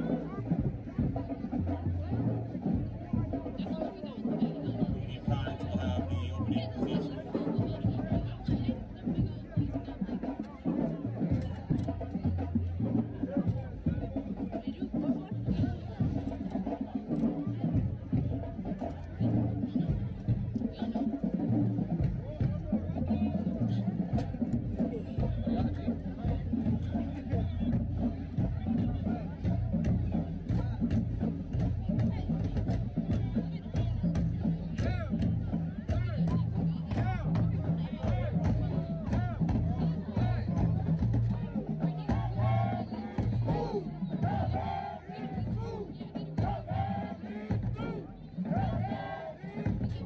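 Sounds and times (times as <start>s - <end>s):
crowd chatter: 0.0s - 50.0s.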